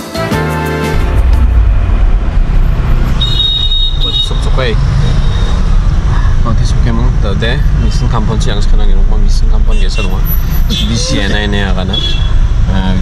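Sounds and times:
steady high tone: 0.8 - 6.0
engine and road rumble: 0.9 - 13.0.

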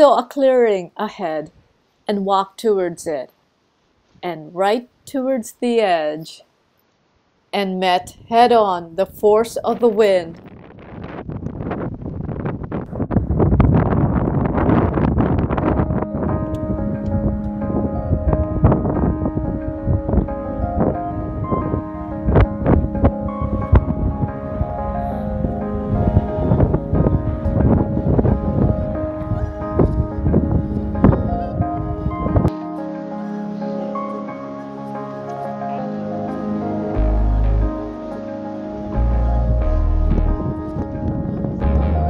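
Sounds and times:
wind buffeting microphone: 8.0 - 32.5, 38.9 - 42.0
slow background music: 15.3 - 42.0.

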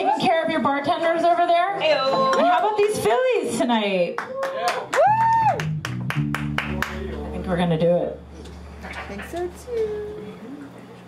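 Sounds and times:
audience clapping: 2.3 - 3.3, 4.1 - 7.4
sustained guitar and bass notes: 5.5 - 10.3.

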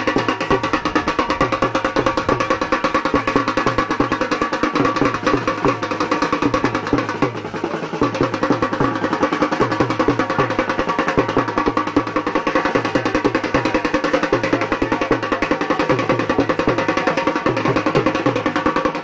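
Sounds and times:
fast processional drumming: 0.0 - 19.0.

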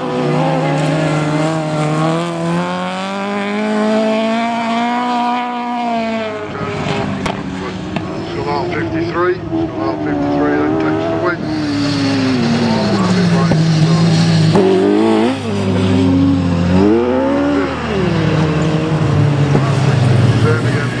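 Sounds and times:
race car engines revving: 0.0 - 21.0.

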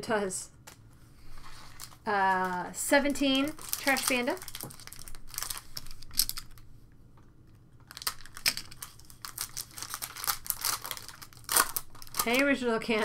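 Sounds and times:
foil wrapper tearing and crinkling: 1.6 - 6.6, 7.9 - 13.0.

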